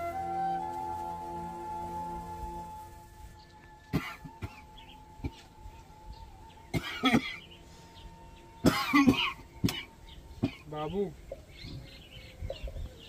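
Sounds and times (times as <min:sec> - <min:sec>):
man coughing: 0:03.9 - 0:04.6, 0:06.7 - 0:07.4, 0:08.6 - 0:10.8.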